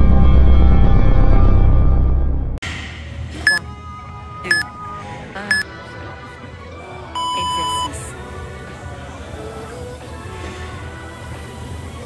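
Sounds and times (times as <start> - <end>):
music: 0.0 - 12.0
longer lower timer beep: 7.2 - 7.9.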